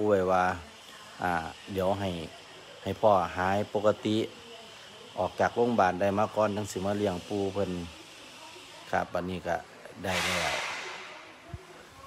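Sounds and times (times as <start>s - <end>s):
loud breathy hiss: 0.0s - 12.0s.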